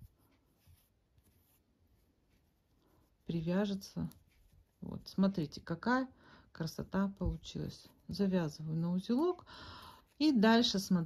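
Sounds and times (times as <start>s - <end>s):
yarn rustling: 0.0s - 5.8s.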